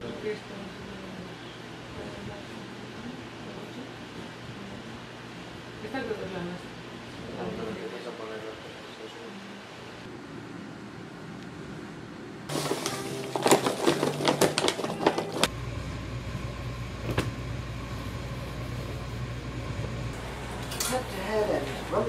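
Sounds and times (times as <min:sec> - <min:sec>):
plastic bag crinkling: 0:12.5 - 0:15.5
steady low hum: 0:15.4 - 0:22.0.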